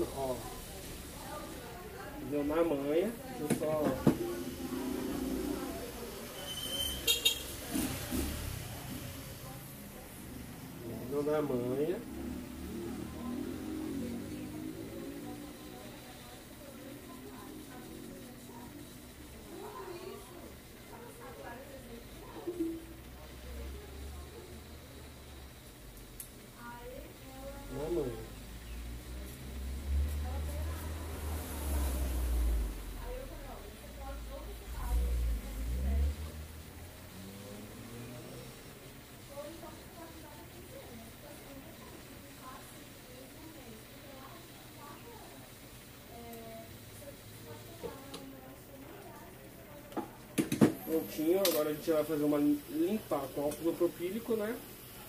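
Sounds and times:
faint indistinct speech: 0.0s - 51.6s
motor vehicle passing by: 3.7s - 16.3s, 27.3s - 38.8s.

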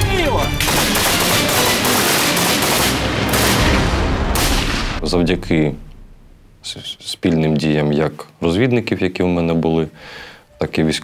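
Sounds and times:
machine gun automatic fire: 0.6s - 5.0s.

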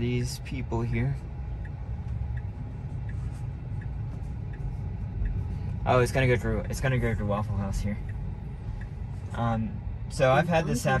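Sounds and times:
road and tyre rumble: 0.0s - 11.0s
turn signal ticking: 0.0s - 11.0s.

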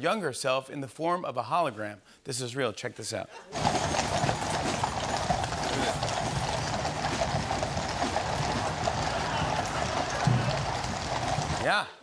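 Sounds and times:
steady background din: 3.5s - 11.8s
horse hooves clip-clopping on road: 3.6s - 11.7s.

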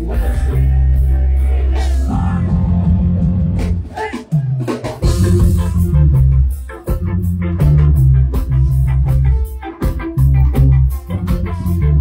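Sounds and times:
electric guitars: 0.0s - 4.0s, 4.8s - 12.0s
bass guitar: 0.0s - 12.0s
drums and cymbal hits: 0.0s - 12.0s.

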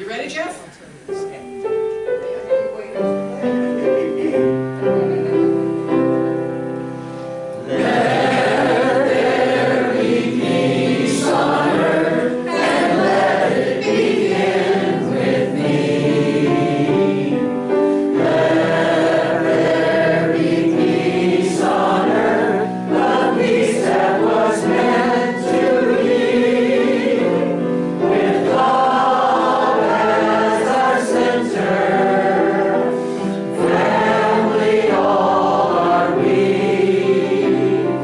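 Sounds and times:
piano introduction: 0.0s - 38.0s
congregation singing: 5.7s - 38.0s.

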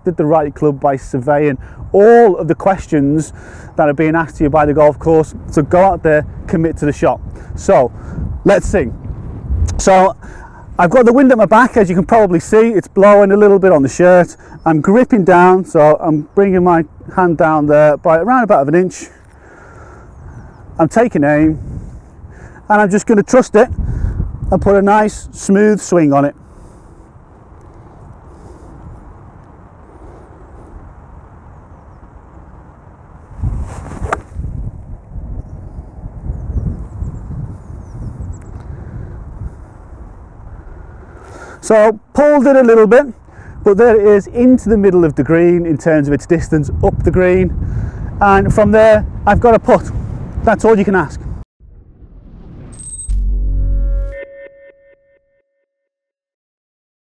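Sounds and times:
wind buffeting microphone: 0.0s - 41.5s, 42.9s - 52.9s
deep bass hit: 51.6s - 54.3s
rising whoosh: 51.6s - 55.4s
echoing chiming note: 52.8s - 55.9s.

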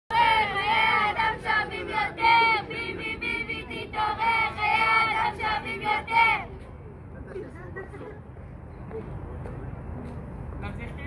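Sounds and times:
protesters chanting in unison: 0.1s - 6.5s.

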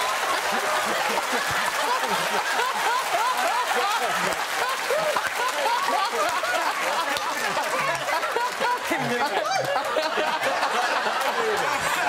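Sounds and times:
audience clapping: 0.0s - 12.0s
audience laughing: 0.0s - 12.0s.

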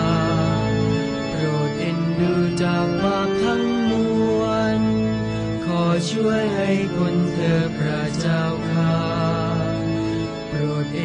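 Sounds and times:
low held chords: 0.0s - 11.0s
voices chanting a litany: 0.0s - 11.0s.

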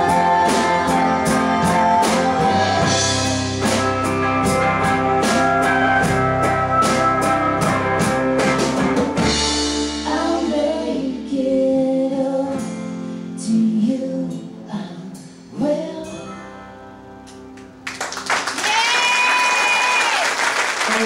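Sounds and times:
country band playing: 0.0s - 11.7s
drums: 0.0s - 16.4s.

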